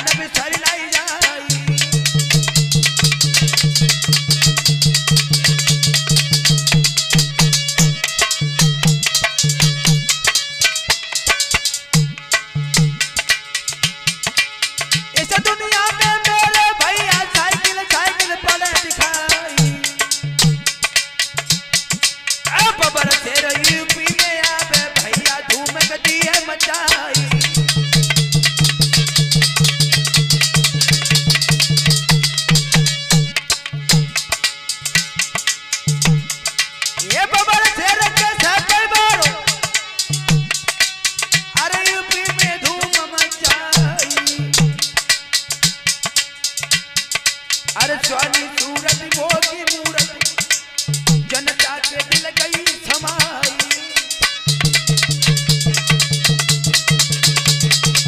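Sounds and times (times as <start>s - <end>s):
fast drum beat: 0.0s - 58.0s
harmonium: 0.0s - 58.0s.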